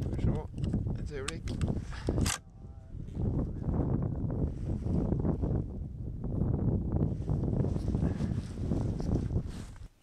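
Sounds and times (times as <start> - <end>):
low rumble of wind: 0.0 - 10.0
clothing rustling against microphone: 7.1 - 10.0.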